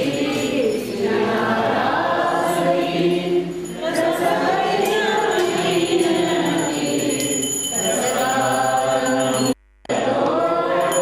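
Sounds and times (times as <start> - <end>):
group singing: 0.0 - 11.0.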